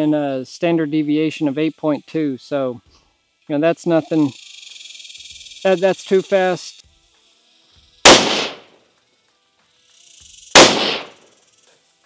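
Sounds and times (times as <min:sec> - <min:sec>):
rifle shots: 0:08.0 - 0:08.7, 0:10.6 - 0:11.3.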